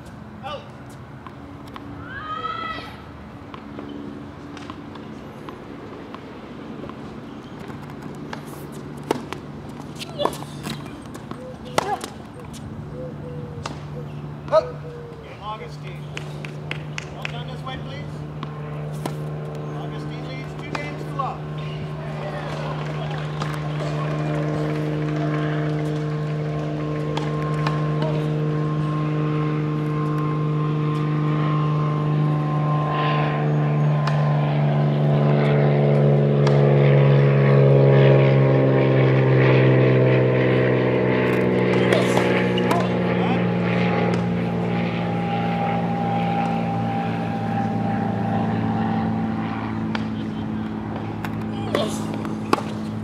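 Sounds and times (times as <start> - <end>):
propeller aircraft engine droning: 0.0 - 53.0
tennis balls being struck: 4.5 - 12.7, 13.6 - 14.8, 18.3 - 28.9, 36.4 - 36.7, 41.3 - 45.2, 49.8 - 53.0.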